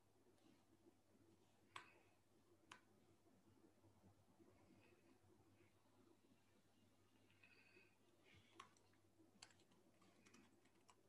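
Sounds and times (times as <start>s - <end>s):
faint sharp clicks: 1.7s - 2.9s.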